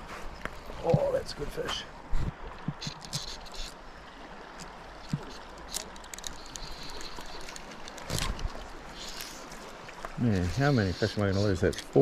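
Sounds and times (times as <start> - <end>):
river water flowing: 0.0 - 12.0
faint clicks: 4.5 - 10.2.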